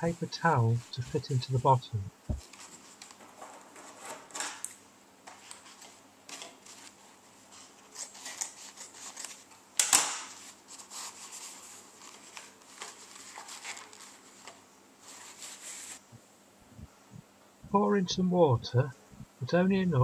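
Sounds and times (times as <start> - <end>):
paper towel rustling: 0.0 - 4.6, 5.3 - 9.6, 10.2 - 16.1.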